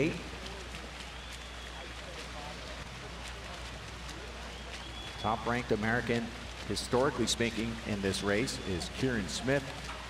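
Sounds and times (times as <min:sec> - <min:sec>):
murmuring crowd: 0:00.0 - 0:05.6
swimmers splashing: 0:00.0 - 0:10.0.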